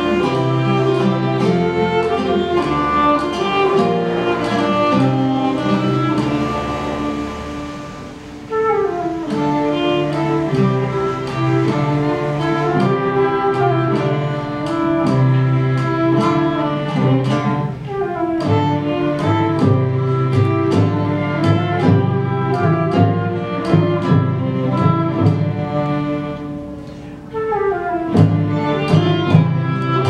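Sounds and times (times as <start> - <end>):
classical guitar: 0.0 - 30.0
flute melody: 0.0 - 30.0
frame drum beats: 0.0 - 30.0
violin melody: 0.0 - 30.0.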